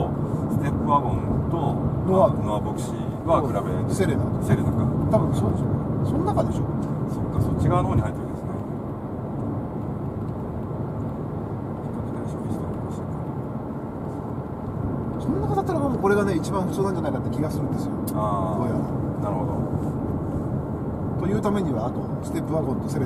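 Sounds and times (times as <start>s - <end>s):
people talking: 0.0s - 8.6s, 11.9s - 13.1s, 15.2s - 19.7s, 21.2s - 23.0s
road and engine noise in car cabin: 0.0s - 23.0s.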